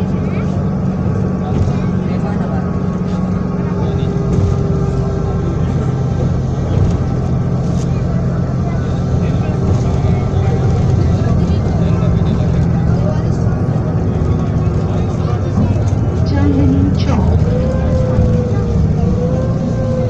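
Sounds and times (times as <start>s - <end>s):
bus engine drone: 0.0s - 20.0s.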